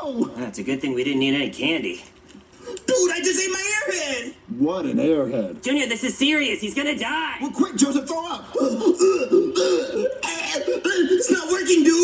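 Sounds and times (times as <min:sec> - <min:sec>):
man retching and coughing: 0:08.5 - 0:11.7.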